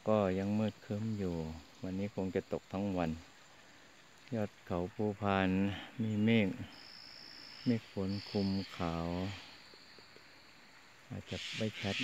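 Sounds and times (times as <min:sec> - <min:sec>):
insect trilling: 0:00.0 - 0:12.0.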